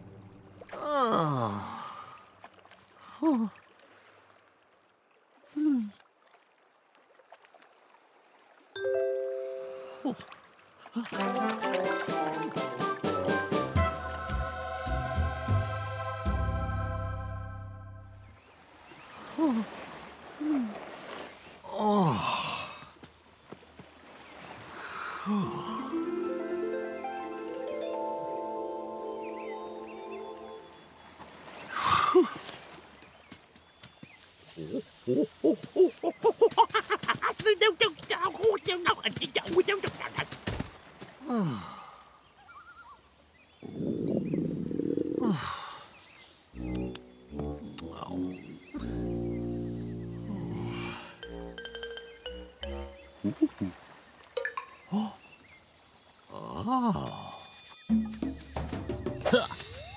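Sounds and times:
cartoon bell chime: 8.8 - 10.0, 51.2 - 53.3
faint hiss: 33.9 - 36.5.

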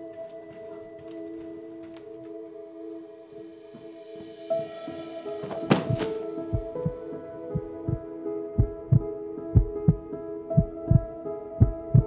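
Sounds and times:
held music chord: 0.0 - 12.0
heartbeat thumps: 5.8 - 7.0, 7.6 - 12.0.

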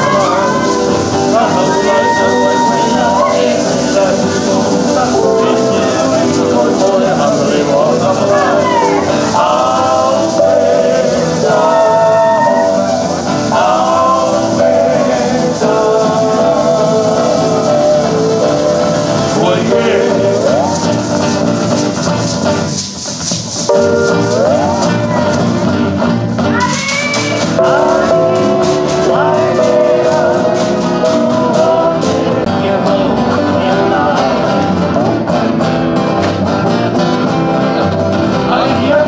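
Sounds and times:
person singing: 0.0 - 22.0, 23.7 - 35.7, 37.7 - 39.0
feathered gourd rattles shaking: 0.0 - 32.4
guitar: 0.0 - 39.0.

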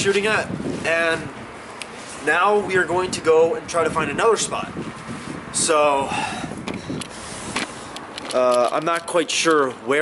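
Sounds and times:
camera handling clicks and knocks: 6.6 - 9.1.

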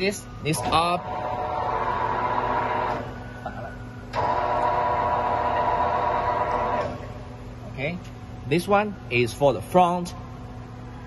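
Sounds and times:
machine low hum: 0.3 - 9.2
motor whining: 0.6 - 3.2, 4.1 - 7.2.

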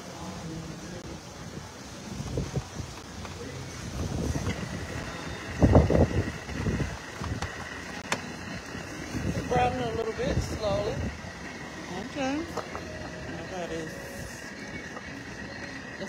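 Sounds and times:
faint voices: 0.0 - 16.0
wind buffeting microphone: 1.0 - 16.0.

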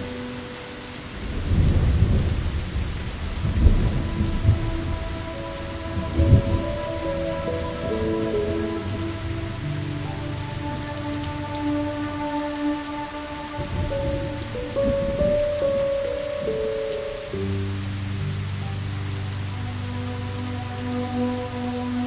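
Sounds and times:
slow soft music: 0.0 - 22.0
steady rain falling: 0.0 - 22.0
low rumble of thunder: 1.2 - 16.7.

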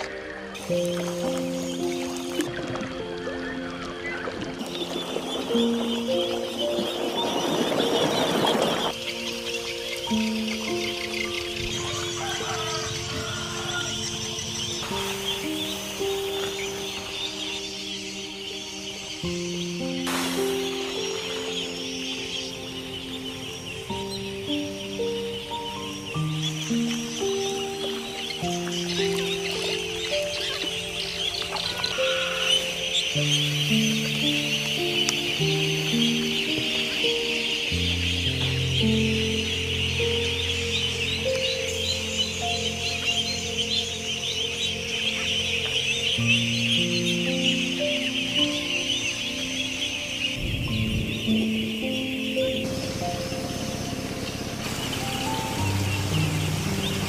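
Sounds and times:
ducklings peeping: 0.0 - 57.0
slow background music: 0.0 - 57.0.

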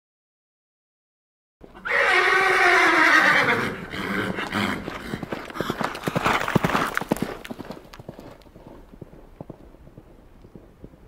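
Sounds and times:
horse neighing: 1.7 - 5.3.

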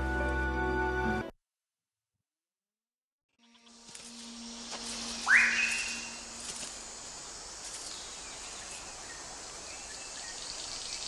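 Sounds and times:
shrill drone of insects: 3.7 - 11.0
whistled bird call rising: 5.2 - 6.2.

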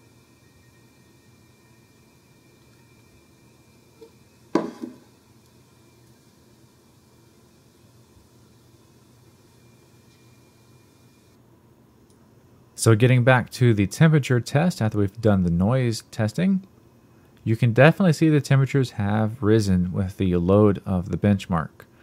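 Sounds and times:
thin high tone: 0.0 - 5.1
laptop cooling fans whirring: 0.0 - 13.4
sharp knock: 4.6 - 5.1.

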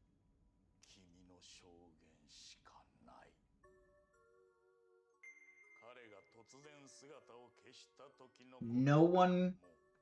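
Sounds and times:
faint dialogue: 5.3 - 9.7.

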